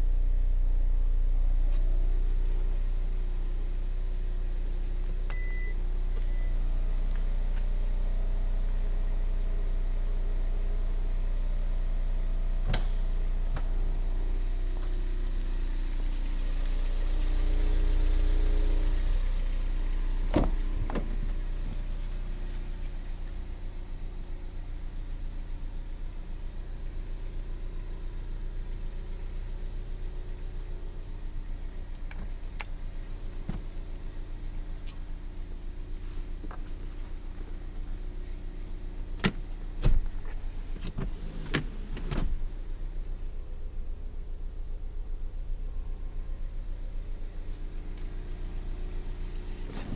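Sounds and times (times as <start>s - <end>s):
faint droning tone: 0.0s - 25.2s
low mechanical hum: 0.0s - 49.9s
seat latch clicks and knocks: 12.6s - 13.0s, 20.3s - 21.3s
car door unlatching clunk: 12.6s - 13.8s, 20.2s - 21.9s, 39.2s - 42.5s
heavy seat thump: 20.3s - 21.8s, 33.4s - 33.8s, 39.2s - 42.4s.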